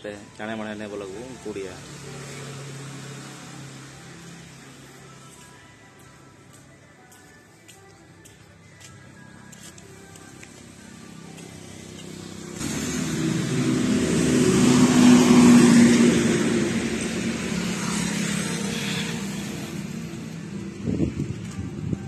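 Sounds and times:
vehicle passing on road: 1.4s - 5.2s, 10.6s - 22.0s.

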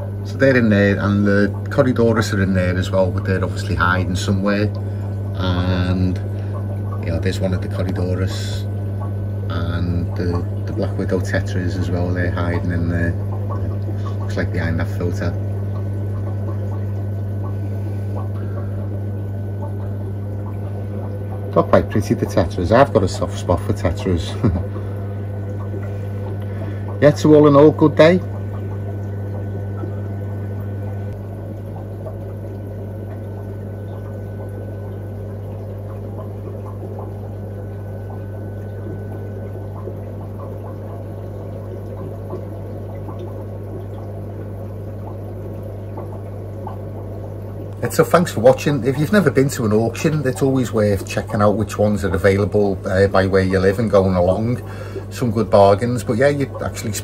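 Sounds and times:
aquarium filter humming: 0.0s - 57.0s
faint water trickling: 0.0s - 57.0s.

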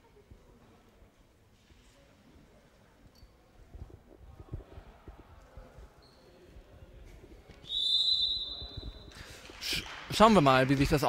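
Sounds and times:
referee's whistle blast: 7.6s - 9.1s.

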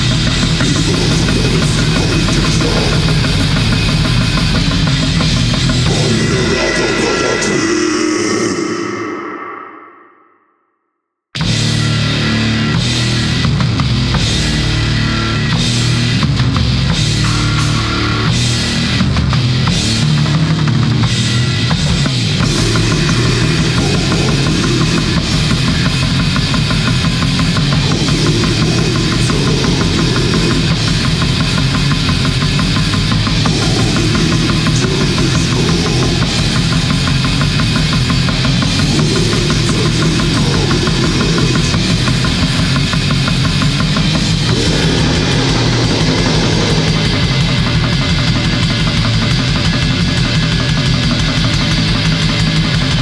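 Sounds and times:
fast drumming: 0.0s - 7.4s, 21.8s - 53.0s
distorted guitar and bass: 0.0s - 9.9s, 11.4s - 53.0s.

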